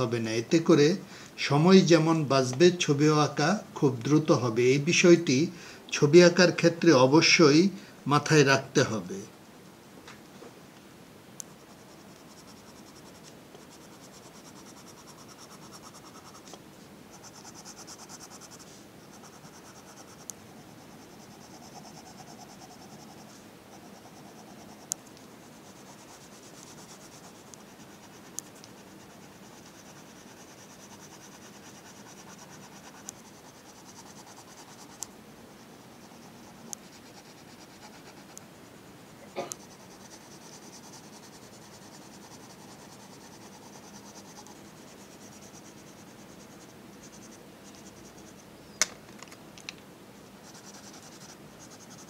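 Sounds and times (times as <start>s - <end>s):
pencil scratching on paper: 11.5s - 38.5s, 39.6s - 48.5s, 50.3s - 52.0s.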